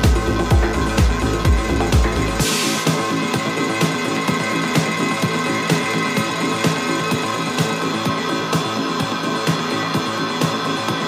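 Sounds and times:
electronic dance music: 0:00.0 - 0:11.0
steady kick drum: 0:00.0 - 0:11.0
sustained synth tones: 0:00.0 - 0:11.0.

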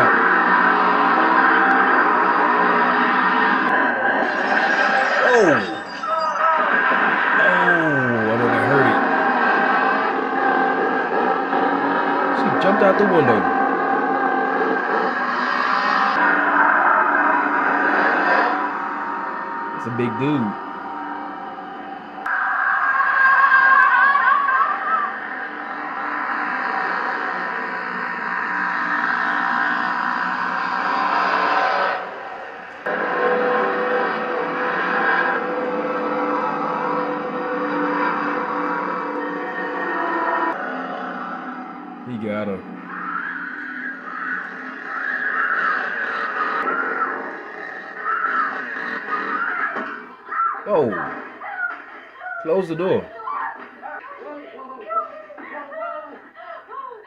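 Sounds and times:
horror film score: 0:00.0 - 0:54.0
wavering cries: 0:04.3 - 0:11.0.

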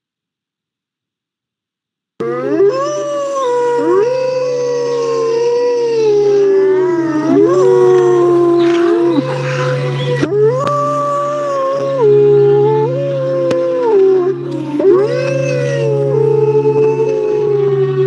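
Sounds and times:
low hum: 0:02.2 - 0:18.0
wolves howling: 0:02.2 - 0:18.0.

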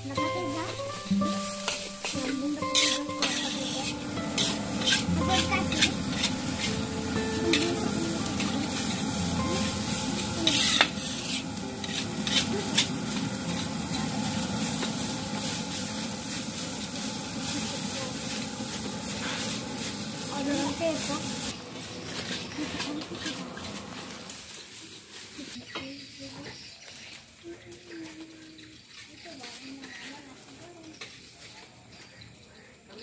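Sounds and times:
metal spatula scraping wok: 0:00.0 - 0:25.6
rice sizzling in a wok: 0:00.0 - 0:33.0
spatula clanking on pan: 0:01.6 - 0:06.9, 0:10.4 - 0:13.7.

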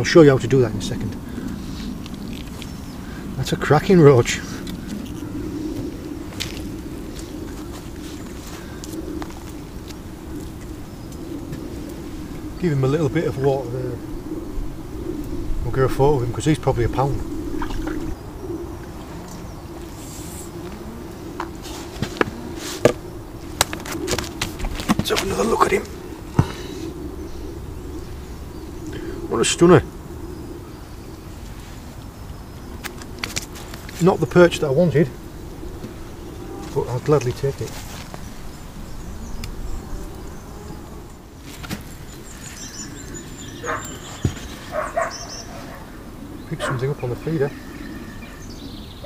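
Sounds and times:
wind rumble on microphone: 0:00.0 - 0:49.0
high chirping calls: 0:41.9 - 0:49.0.

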